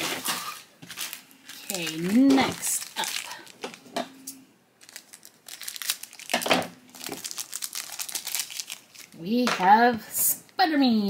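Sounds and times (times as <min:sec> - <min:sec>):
plastic wrapper crinkling and tearing: 0:00.0 - 0:09.2.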